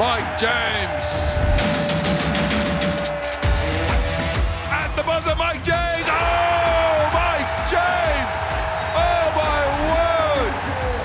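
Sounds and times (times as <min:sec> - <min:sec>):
music with fast percussive beat: 0:00.0 - 0:11.0.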